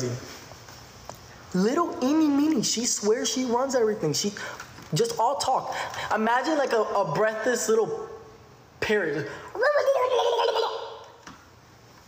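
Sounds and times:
man imitating a parrot: 0:09.6 - 0:11.2.

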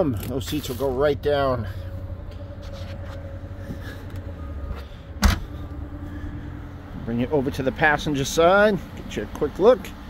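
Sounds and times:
low steady hum: 0:00.0 - 0:10.0
liftgate motor humming: 0:01.0 - 0:09.1
liftgate latching thump: 0:05.2 - 0:05.5.

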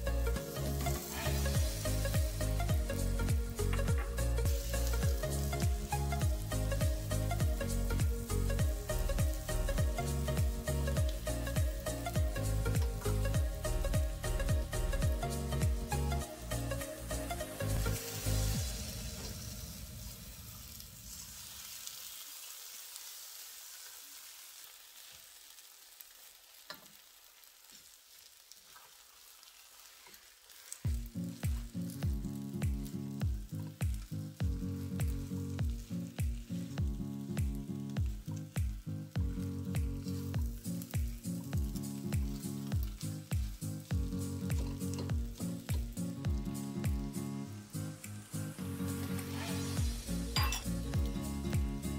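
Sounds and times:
music with a steady beat: 0:00.0 - 0:19.2, 0:30.9 - 0:51.9
background music: 0:00.0 - 0:20.2, 0:30.9 - 0:51.9
rice sizzling in a wok: 0:00.0 - 0:51.9.

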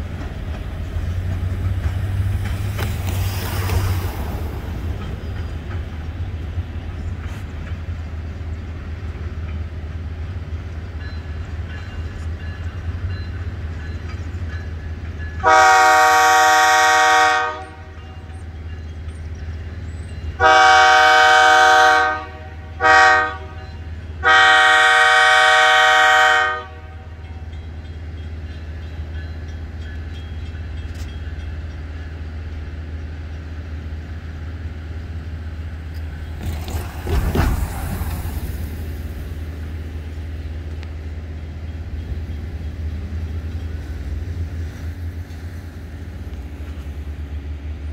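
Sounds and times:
distant locomotive engine rumbling: 0:00.0 - 0:47.9
locomotive air horn blasts: 0:15.4 - 0:18.0, 0:20.4 - 0:27.2.

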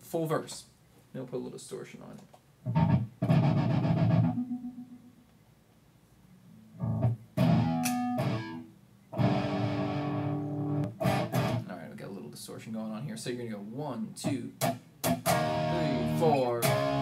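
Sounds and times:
distorted electric guitar chords: 0:02.7 - 0:05.2, 0:06.8 - 0:11.6, 0:15.0 - 0:17.0.

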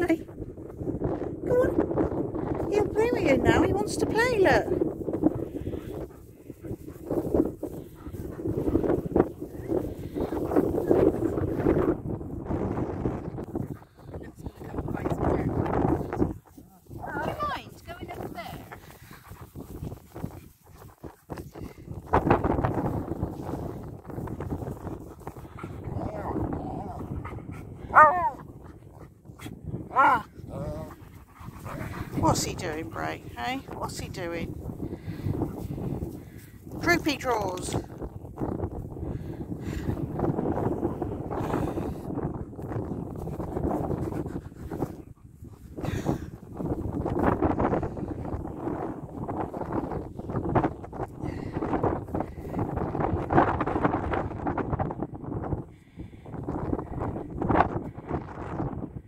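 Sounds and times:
dogs growling: 0:24.8 - 0:34.0
dog yelps: 0:27.9 - 0:28.4.

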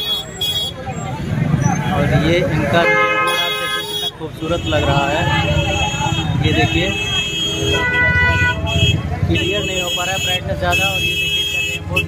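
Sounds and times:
engine and traffic rumble: 0:00.0 - 0:12.0
street crowd chatter: 0:00.0 - 0:12.0.

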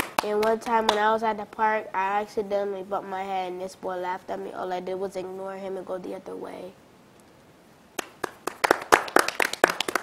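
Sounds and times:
people clapping: 0:00.0 - 0:01.0, 0:08.0 - 0:10.0.

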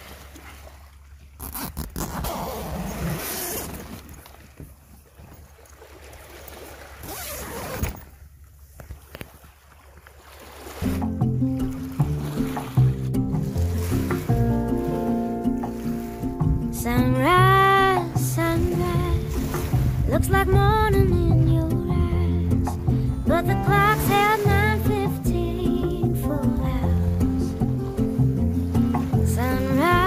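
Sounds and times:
sea water splashing: 0:00.0 - 0:30.0
instrumental music: 0:10.8 - 0:30.0
wind on microphone: 0:16.4 - 0:28.4.

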